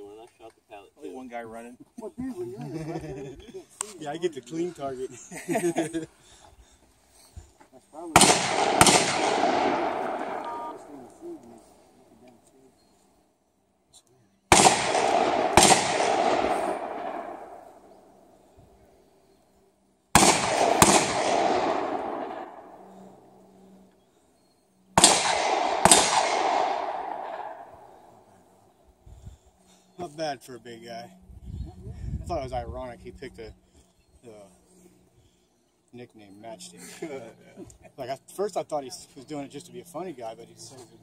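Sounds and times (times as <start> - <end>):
faint outdoor background: 0.0 - 41.0
gunshots with rolling echo: 8.1 - 11.4, 14.5 - 18.3, 20.1 - 23.2, 25.0 - 28.3.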